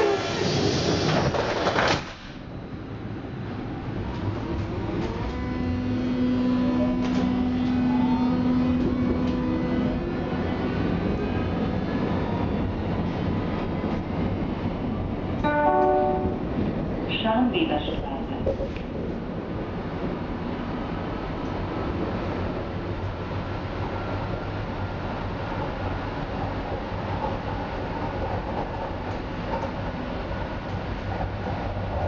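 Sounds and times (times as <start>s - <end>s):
train doors shutting: 0.0s - 2.5s, 4.0s - 12.2s
train running rumble: 0.0s - 32.0s
train drive whine rising: 2.4s - 16.7s.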